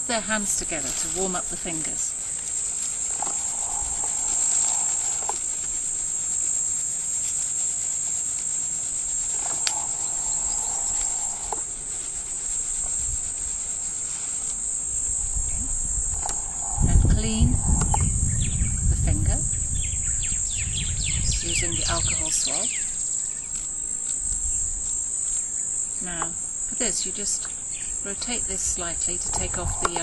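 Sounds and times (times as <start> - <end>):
high-pitched insect drone: 0.0 - 30.0.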